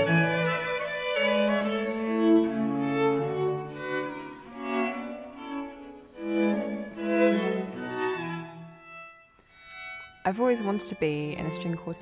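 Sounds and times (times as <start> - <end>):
string quartet playing: 0.0 - 12.0.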